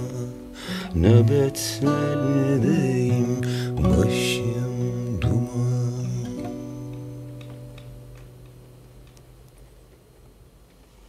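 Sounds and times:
acoustic guitar chord ringing: 0.0s - 9.0s
faint clicks: 6.9s - 11.0s.

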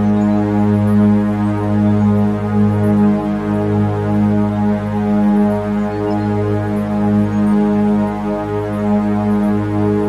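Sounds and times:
meditation music drone: 0.0s - 10.0s.

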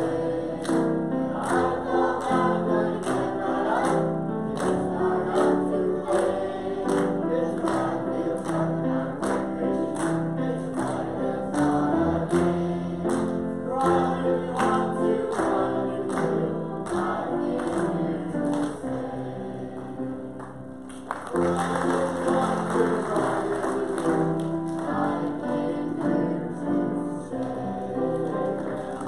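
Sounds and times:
men and children singing gospel: 0.0s - 20.6s, 21.2s - 29.0s.

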